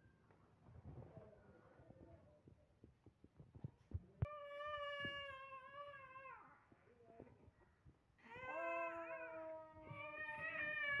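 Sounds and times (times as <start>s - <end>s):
infant crying: 8.2s - 11.0s.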